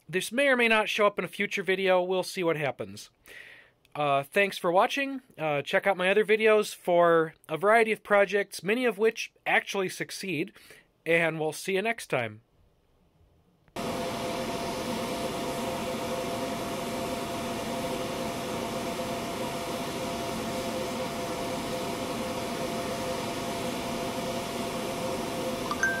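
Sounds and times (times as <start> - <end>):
air blower motor whine: 13.8 - 26.0
brief higher tone: 25.7 - 26.0.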